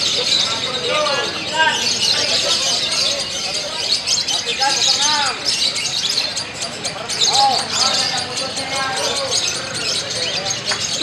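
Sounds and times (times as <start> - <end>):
people calling in background: 0.0 - 11.0.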